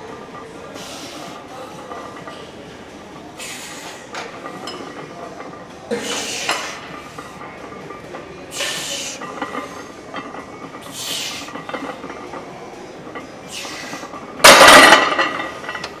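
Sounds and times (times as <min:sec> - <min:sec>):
gym background: 0:00.0 - 0:16.0
barbell plates clinking: 0:14.4 - 0:16.0.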